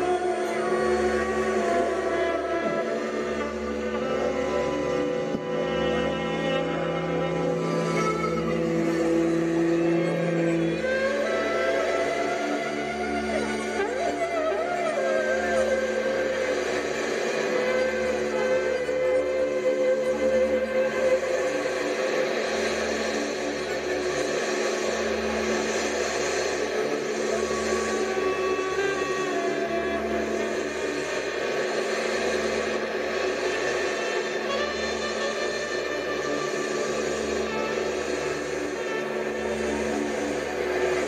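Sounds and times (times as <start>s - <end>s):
held drone: 0.0s - 41.0s
low pulsing throb: 0.0s - 41.0s
noisy electronics and instruments: 0.0s - 41.0s.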